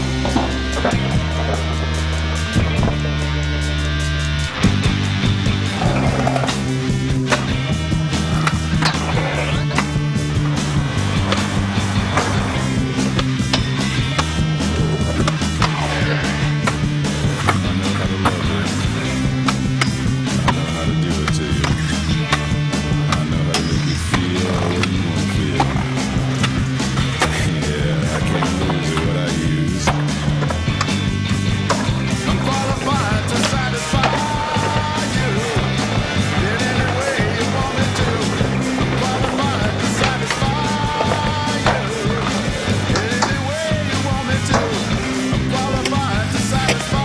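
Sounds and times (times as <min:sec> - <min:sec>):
rock music: 0:00.0 - 0:47.0
skateboard clacks: 0:04.6 - 0:47.0.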